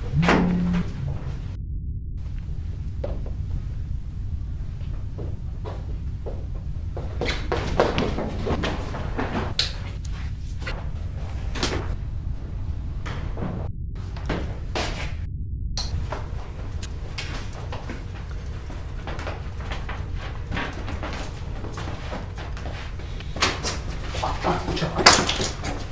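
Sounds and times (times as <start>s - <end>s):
steady low hum: 0.0s - 25.9s
irregular knocks and bumps: 2.4s - 3.6s, 4.7s - 9.9s.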